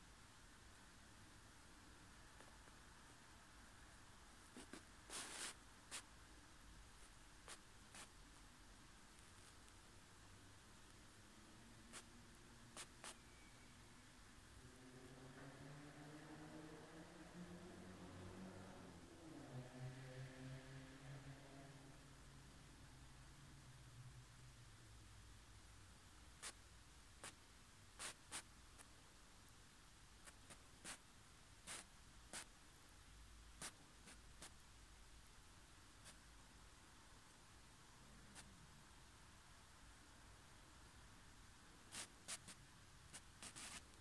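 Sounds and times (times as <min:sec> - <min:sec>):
faint low hum: 0:00.0 - 0:44.0
soft scratchy rustles: 0:04.4 - 0:06.1, 0:07.0 - 0:08.5, 0:09.1 - 0:09.8, 0:41.9 - 0:44.0.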